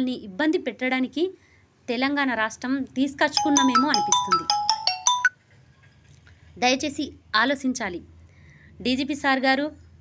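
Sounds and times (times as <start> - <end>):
woman speaking: 1.9 - 4.6
electronic ringtone beeps: 3.4 - 5.4.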